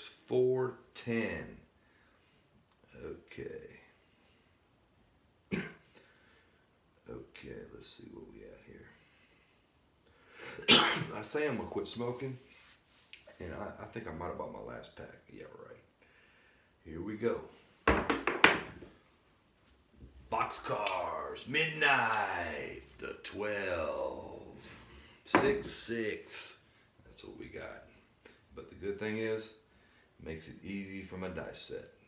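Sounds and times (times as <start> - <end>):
man's cough-like vocal burst: 5.5 - 5.9, 10.6 - 11.2.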